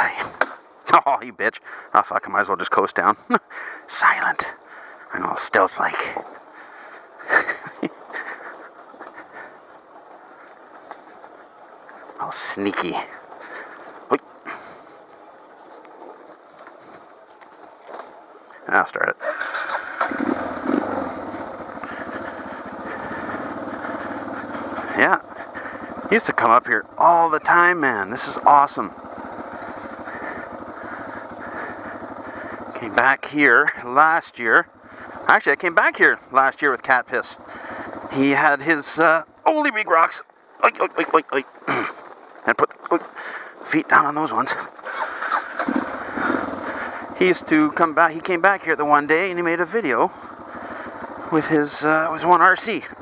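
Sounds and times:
motorcycle engine starting: 0.0 - 53.0.

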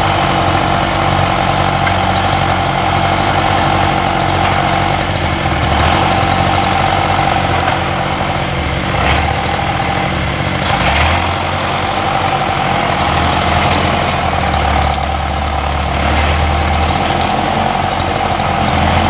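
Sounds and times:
tractor diesel engine running: 0.0 - 19.0.

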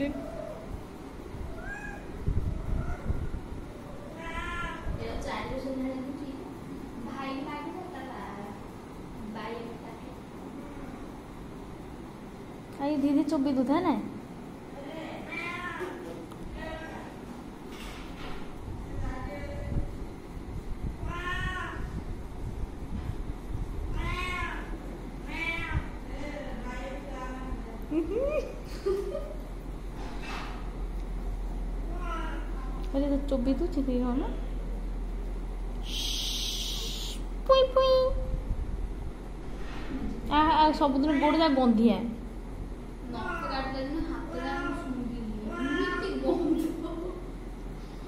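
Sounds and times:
cat meowing: 1.5 - 4.9, 15.2 - 16.1, 21.0 - 21.9, 23.9 - 25.9, 31.9 - 32.6, 43.1 - 43.6, 45.5 - 46.2.

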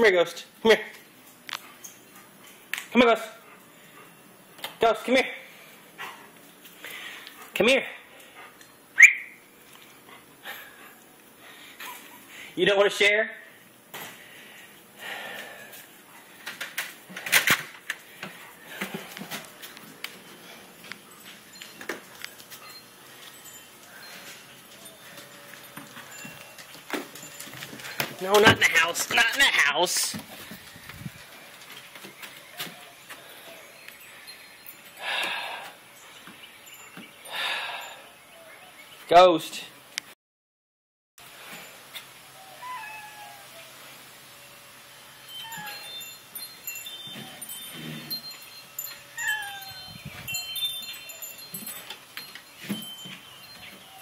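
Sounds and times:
wind chimes ringing: 18.1 - 30.5, 31.2 - 38.9, 44.9 - 54.0.

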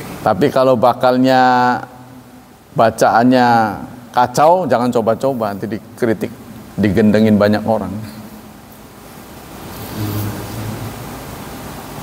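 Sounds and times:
steady background hiss: 0.0 - 12.0
faint low hum: 3.7 - 12.0.

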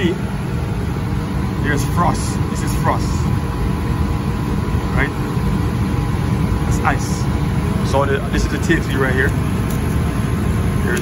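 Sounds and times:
air conditioning unit rumbling: 0.0 - 11.0
faint steady hum: 0.0 - 11.0.

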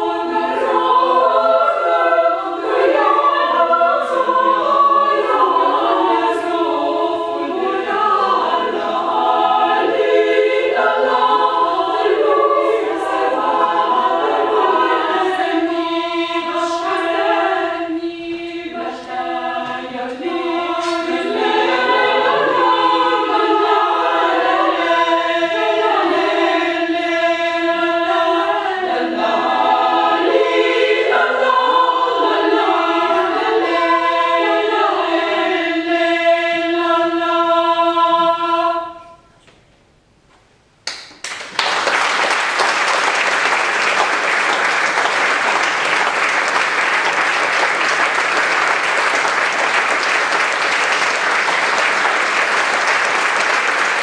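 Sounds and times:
women's choir singing a cappella: 0.0 - 39.4.

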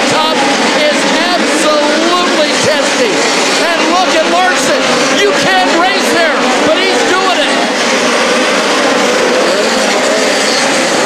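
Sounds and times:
commentator speaking: 0.0 - 8.2
race car engines: 0.0 - 11.0.

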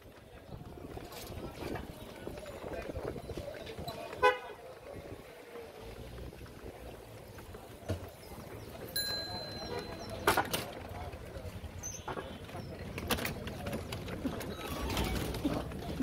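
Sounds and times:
passing voices: 0.0 - 16.0
traffic: 0.0 - 16.0
vehicle horn honk: 4.2 - 4.6.

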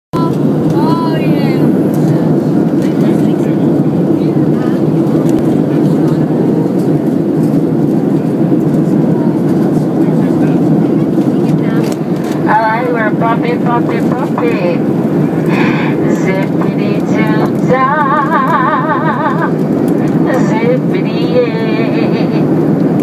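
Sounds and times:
jet engines droning: 0.2 - 23.0
rushing airflow: 0.2 - 23.0.

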